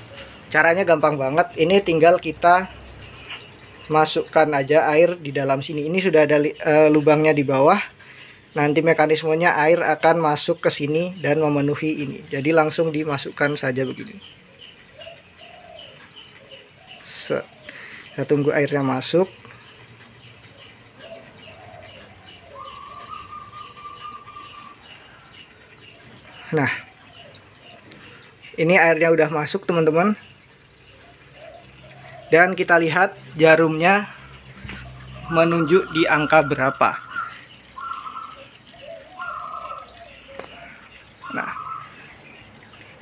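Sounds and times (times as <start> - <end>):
faint bird chirping: 0.0 - 43.0
water trickling and dripping: 0.0 - 43.0.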